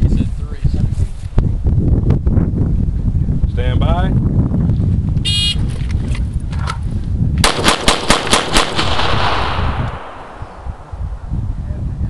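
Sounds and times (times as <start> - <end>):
wind rumble on microphone: 0.0 - 12.0
rapid handgun shots: 7.4 - 10.9.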